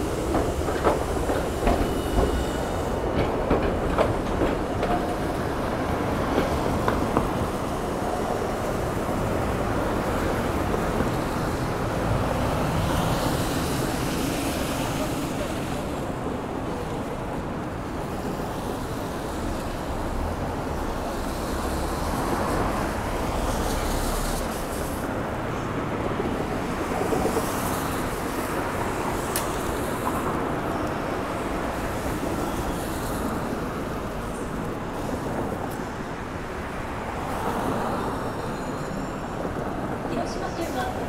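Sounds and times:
traffic on wet streets: 0:00.0 - 0:41.0.

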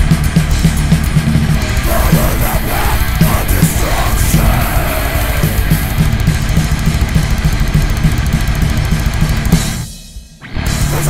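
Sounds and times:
bass drum strokes: 0:00.0 - 0:09.9
metal music: 0:00.0 - 0:11.0
rapid cymbal hits: 0:00.0 - 0:11.0.

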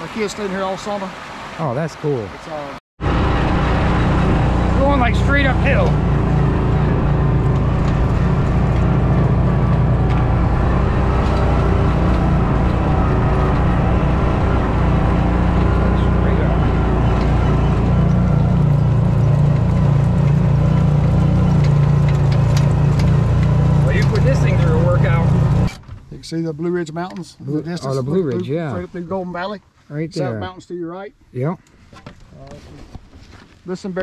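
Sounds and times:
utility vehicle engine under load: 0:03.0 - 0:26.4.

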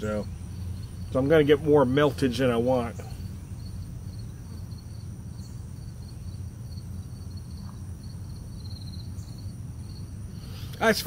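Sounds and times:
insects chirping: 0:00.0 - 0:11.0
low outdoor rumble: 0:00.0 - 0:11.0.

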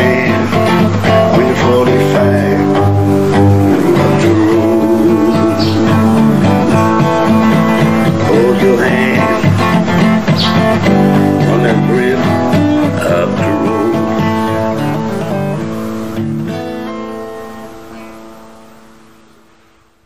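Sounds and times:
acoustic guitar strumming chords: 0:00.0 - 0:20.0.

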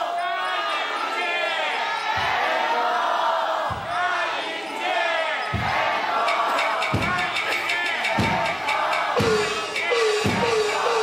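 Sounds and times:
kick drum thumps: 0:02.1 - 0:02.5, 0:03.6 - 0:04.0, 0:05.5 - 0:06.0, 0:08.2 - 0:08.6.

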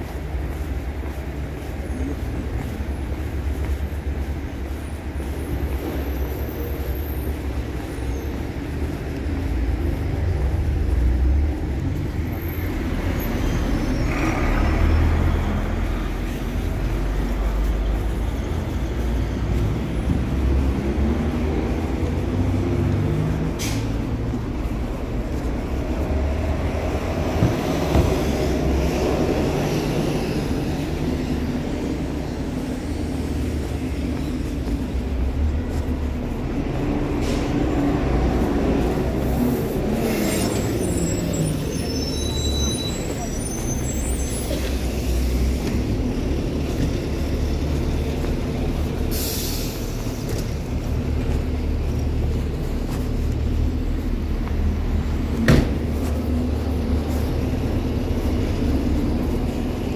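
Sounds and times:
bus engine passing: 0:00.0 - 0:59.9
cars passing: 0:00.0 - 0:59.9.

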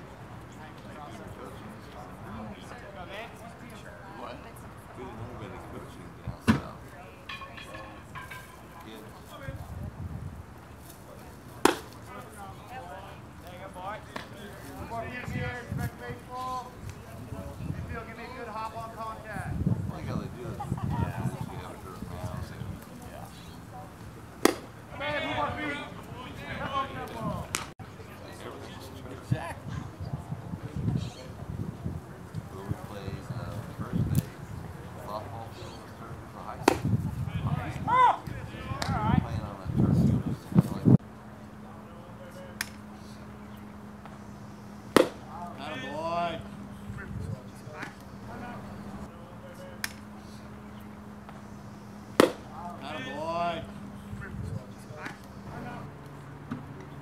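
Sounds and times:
faint voices: 0:00.0 - 0:57.0
baseball hitting catcher's mitt: 0:11.6 - 0:12.1, 0:24.4 - 0:24.8, 0:36.6 - 0:36.9, 0:44.9 - 0:45.3, 0:52.2 - 0:52.5
person shouting a call: 0:37.8 - 0:38.2.

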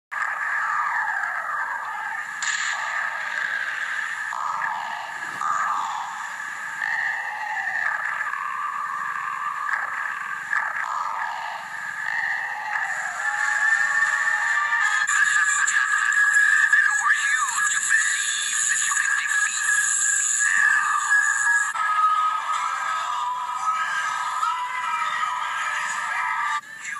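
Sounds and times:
video game music from tv speaker: 0:00.2 - 0:26.9.

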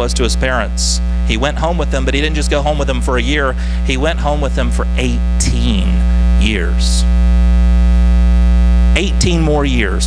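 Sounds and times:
electrical mains hum and buzz: 0:00.0 - 0:10.0.

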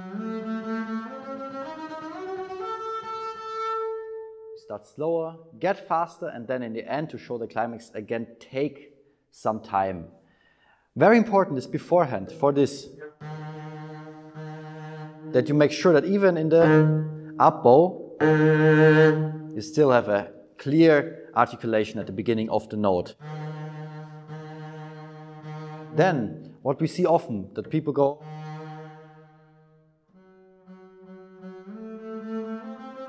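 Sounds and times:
bowed double bass note: 0:13.0 - 0:20.0, 0:23.2 - 0:26.6, 0:28.0 - 0:33.0.

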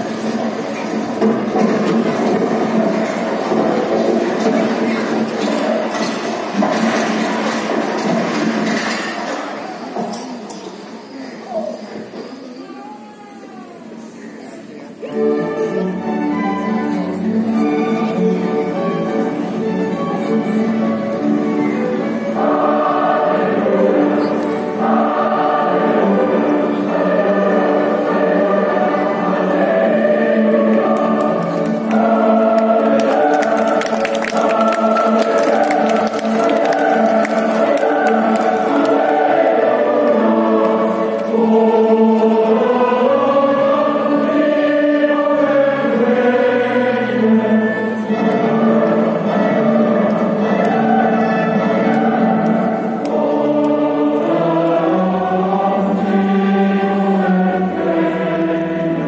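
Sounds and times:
choir singing sustained chords: 0:00.0 - 0:09.9, 0:15.0 - 0:59.0.

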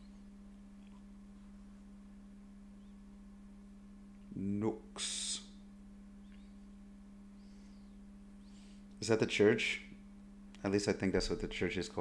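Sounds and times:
low electrical hum: 0:00.0 - 0:12.0
faint high chirps: 0:06.2 - 0:08.7.

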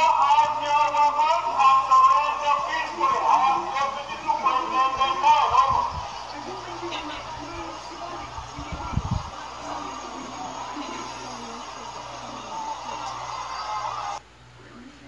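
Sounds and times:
distant people talking: 0:00.0 - 0:15.0
street background noise: 0:00.0 - 0:15.0.

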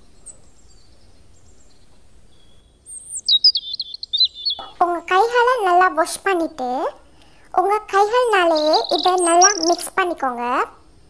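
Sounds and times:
bird chirping: 0:00.0 - 0:10.7.

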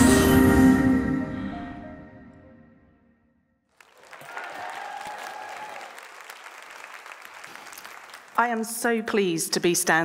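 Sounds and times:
audience applauding: 0:03.7 - 0:08.7.

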